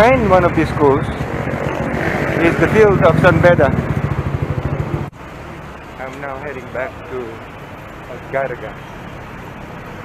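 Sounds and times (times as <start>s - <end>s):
street traffic noise: 0.0s - 10.0s
motor scooter engine idling: 2.9s - 5.7s.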